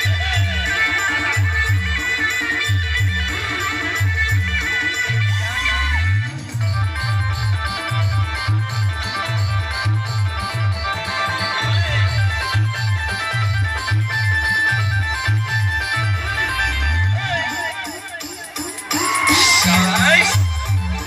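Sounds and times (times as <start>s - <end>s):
heavy bass beat: 5.6s - 21.0s
quick high melody line: 17.3s - 21.0s.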